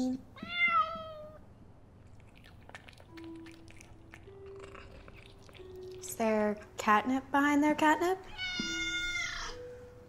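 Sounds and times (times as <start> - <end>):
soft background music: 0.0 - 10.0
cat meowing: 0.4 - 1.4, 8.3 - 9.6.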